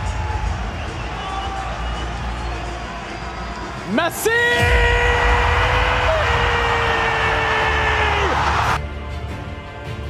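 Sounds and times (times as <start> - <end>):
stadium crowd cheering: 0.0 - 8.8.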